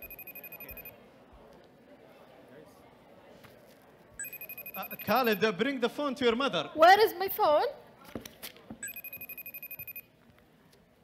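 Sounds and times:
mobile phone ringing: 0.0 - 1.0, 4.2 - 5.4, 8.8 - 10.1.

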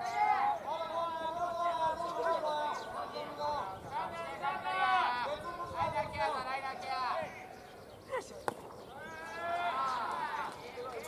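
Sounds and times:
baseball popping into catcher's mitt: 8.4 - 8.8
players shouting: 8.9 - 11.0.

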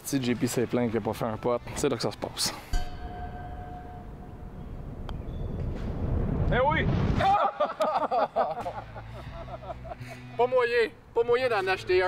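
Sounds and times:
men talking excitedly: 10.3 - 12.0.

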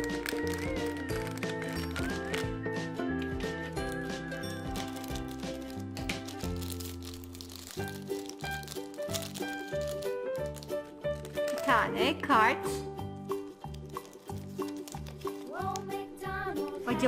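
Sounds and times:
plastic packet crinkling: 0.0 - 2.6, 3.2 - 12.0, 13.3 - 17.0
background music: 0.0 - 17.0.

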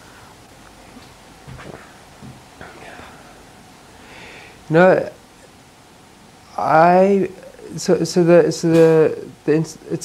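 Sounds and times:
low hiss: 0.0 - 10.0
man drawing breath: 2.6 - 4.6.

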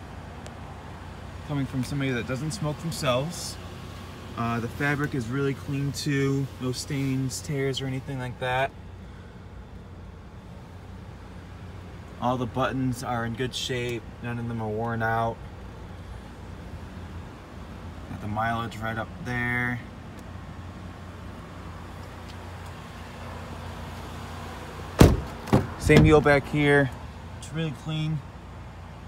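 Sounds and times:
car cabin low hum: 0.0 - 29.0
sharp thump: 25.0 - 26.2.

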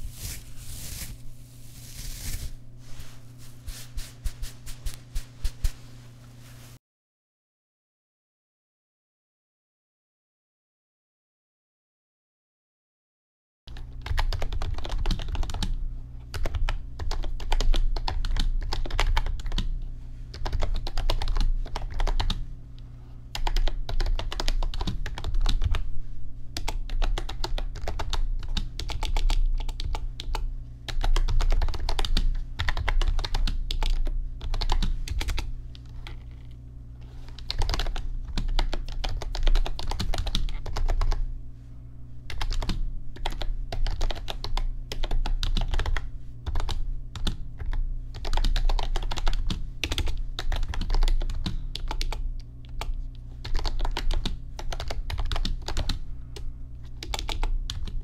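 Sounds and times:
keyboard typing: 13.8 - 19.7, 20.4 - 22.4, 23.4 - 25.8, 26.6 - 35.5, 37.3 - 41.2, 42.3 - 56.0, 56.9 - 58.0.

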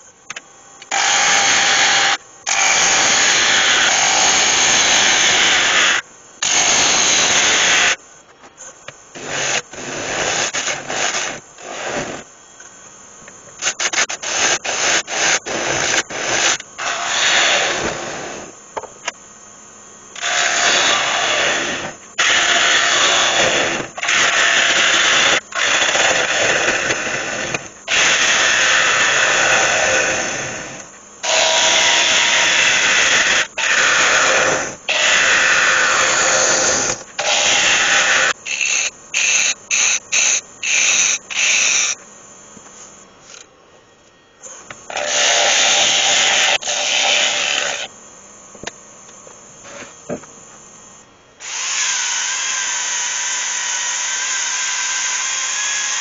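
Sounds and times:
gouge cutting spinning wood: 0.9 - 8.0, 13.7 - 18.5, 20.2 - 42.0, 44.9 - 47.9.

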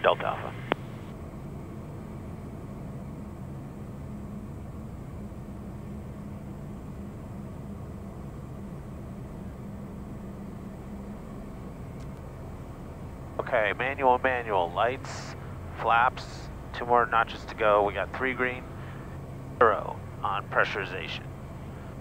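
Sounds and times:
turboprop engine drone in flight: 0.0 - 22.0.

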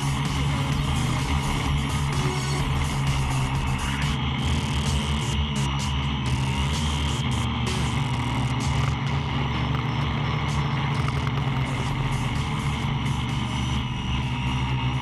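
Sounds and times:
drone propellers buzzing: 0.0 - 15.0.

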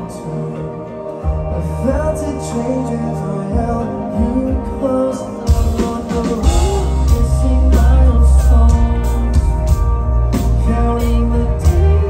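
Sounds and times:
guitars: 0.0 - 12.0
heavy bass: 0.0 - 12.0
man singing: 0.0 - 12.0
drums with cymbal hits: 5.4 - 12.0.

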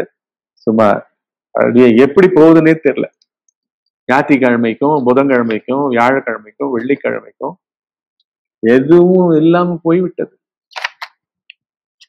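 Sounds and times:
man speaking: 0.0 - 1.0, 1.6 - 3.1, 4.1 - 7.6, 8.6 - 10.3.

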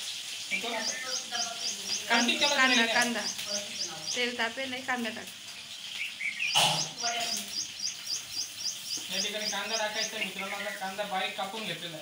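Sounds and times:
small bird chirping: 0.0 - 11.8
onions sizzling in hot oil: 0.0 - 12.0.

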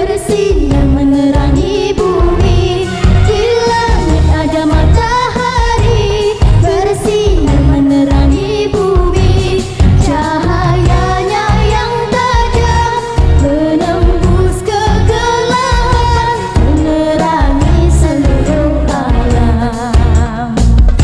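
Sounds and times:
girl singing into a microphone: 0.0 - 20.6
backing track with steady beat: 0.0 - 21.0.

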